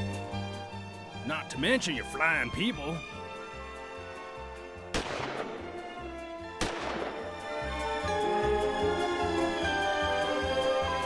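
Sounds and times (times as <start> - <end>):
background music: 0.0 - 11.0
pistol shots: 4.9 - 5.6, 6.6 - 7.3.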